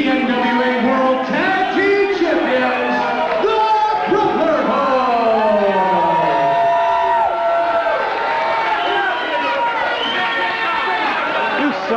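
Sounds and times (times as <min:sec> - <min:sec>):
crowd shouting and yelling: 0:00.0 - 0:11.9.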